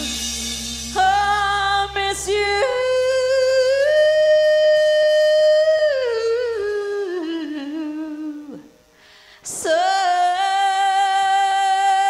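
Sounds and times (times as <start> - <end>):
low sustained band note: 0.0 - 7.8
woman singing long note: 0.0 - 8.7.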